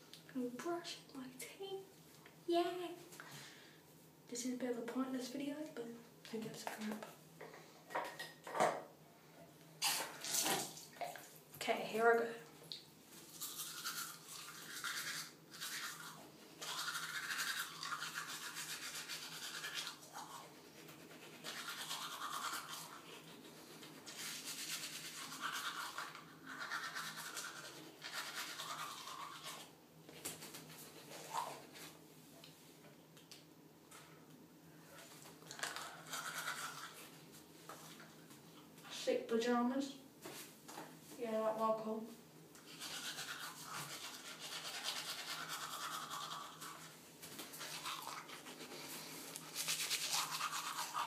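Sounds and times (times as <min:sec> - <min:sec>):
toothbrush scrubbing teeth: 0:13.1 - 0:32.0, 0:35.0 - 0:38.2, 0:42.6 - 0:51.0.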